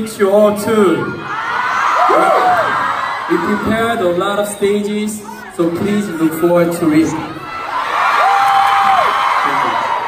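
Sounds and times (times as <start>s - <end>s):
audience cheering and screaming: 0.9s - 10.0s.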